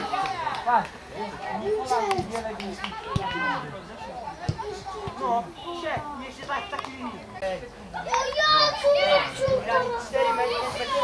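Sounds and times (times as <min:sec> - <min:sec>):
boys calling out: 0:07.9 - 0:11.0.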